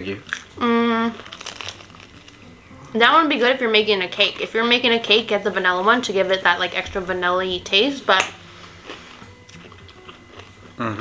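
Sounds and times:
people chewing toast: 0:00.0 - 0:02.8, 0:08.5 - 0:11.0
person humming: 0:00.6 - 0:01.2, 0:10.7 - 0:11.0.

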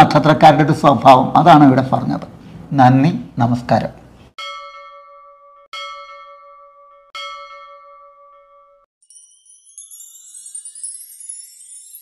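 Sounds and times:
bell ringing: 0:04.4 - 0:12.0.

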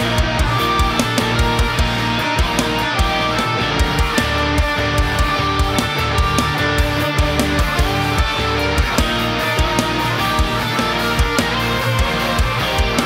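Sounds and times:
distorted electric guitar: 0:00.0 - 0:13.0
drum and bass track: 0:00.0 - 0:13.0.

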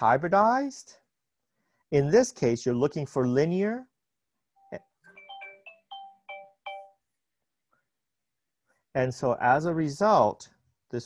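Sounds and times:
electronic ringtone melody: 0:04.6 - 0:07.1.

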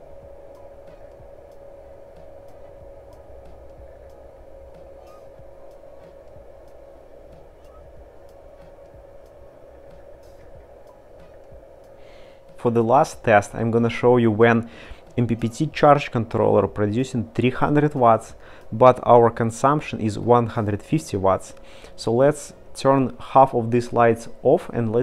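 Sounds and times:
faint electrical whine: 0:00.0 - 0:25.0
low electrical hum: 0:00.0 - 0:25.0.

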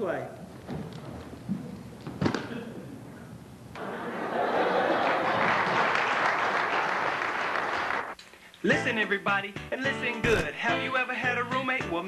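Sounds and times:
audience applause: 0:03.8 - 0:08.2.

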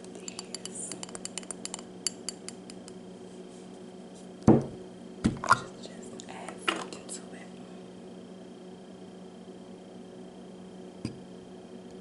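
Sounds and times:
knocks on jar: 0:04.5 - 0:05.6.

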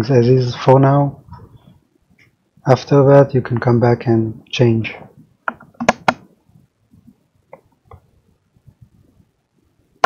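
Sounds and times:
sharp clicks: 0:05.4 - 0:06.2.

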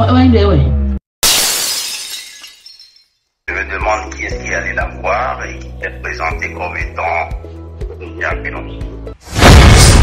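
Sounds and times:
glass bottle shattering: 0:01.2 - 0:03.3.

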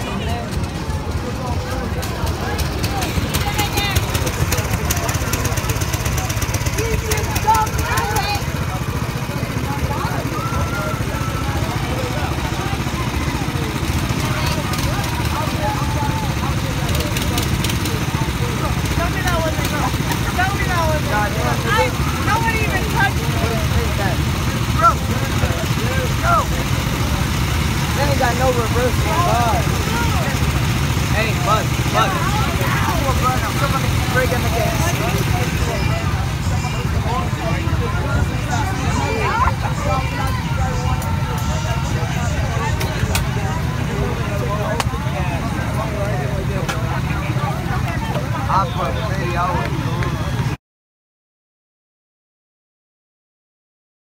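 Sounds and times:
go-kart engines droning: 0:00.0 - 0:50.6
people chattering: 0:00.0 - 0:50.6.

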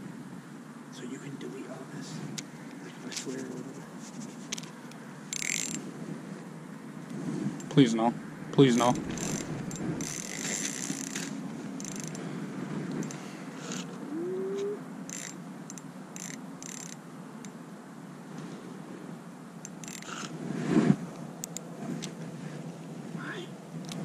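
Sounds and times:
fishing reel clicking and whirring: 0:05.3 - 0:05.8, 0:09.2 - 0:12.2, 0:15.1 - 0:17.0, 0:19.7 - 0:20.3.

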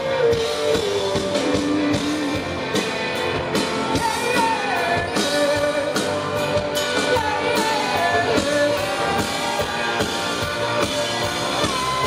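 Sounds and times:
rock band playing live: 0:00.0 - 0:12.0.

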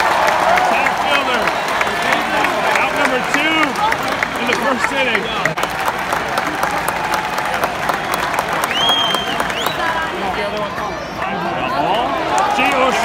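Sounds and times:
scattered clapping: 0:00.0 - 0:10.8
crowd talking and calling out: 0:00.0 - 0:13.0
high whistle: 0:08.6 - 0:09.9.

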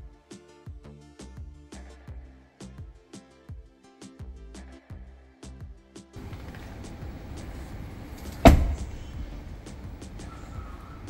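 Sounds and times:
faint music: 0:00.0 - 0:11.0
car door shutting: 0:06.2 - 0:10.4.

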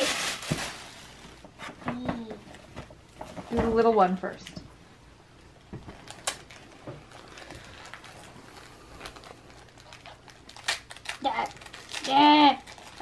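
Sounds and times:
plastic packaging clicks and crinkles: 0:00.0 - 0:03.6, 0:05.6 - 0:13.0.

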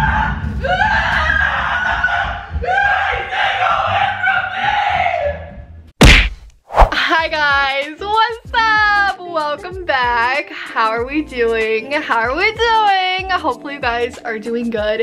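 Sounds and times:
sharp whack: 0:06.0 - 0:07.0.

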